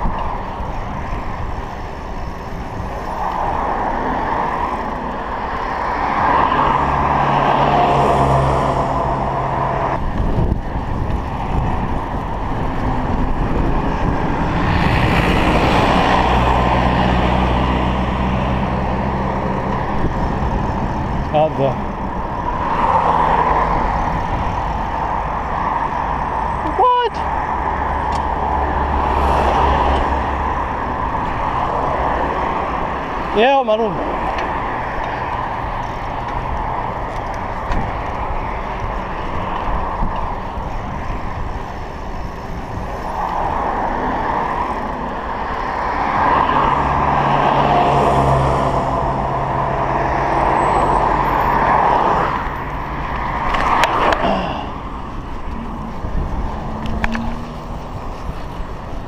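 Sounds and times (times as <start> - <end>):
motor vehicles passing: 0.0 - 59.0.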